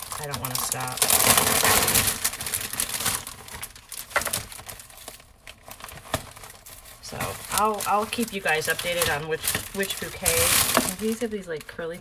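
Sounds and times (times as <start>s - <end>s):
crinkling flower wrapping: 0.0s - 12.0s.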